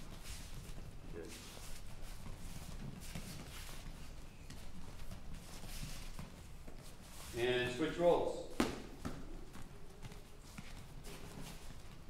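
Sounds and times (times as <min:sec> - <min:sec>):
barefoot footsteps on gym mats: 0:00.0 - 0:12.0
boxing gloves moving: 0:00.0 - 0:12.0.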